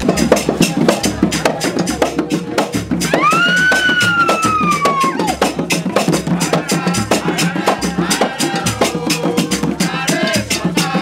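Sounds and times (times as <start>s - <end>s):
traditional drumming: 0.0s - 11.0s.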